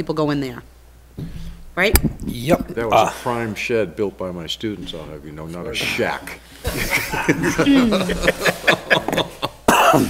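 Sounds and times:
people laughing: 6.6s - 9.7s
person coughing: 9.1s - 10.0s.

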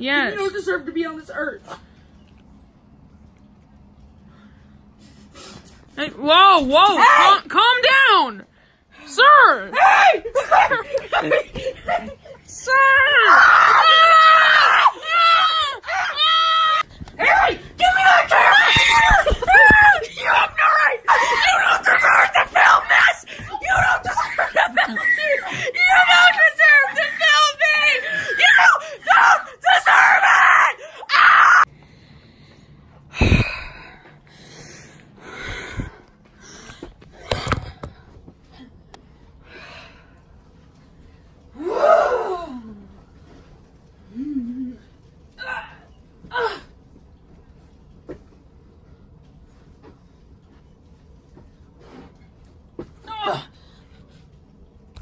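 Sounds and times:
children screaming and yelling: 13.0s - 31.7s.

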